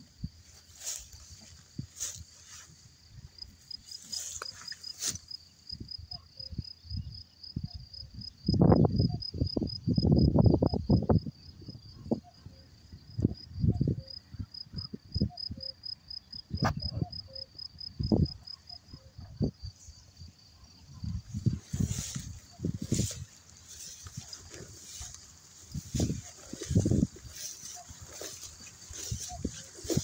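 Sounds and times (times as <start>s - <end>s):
insect chirping: 0.0s - 30.0s.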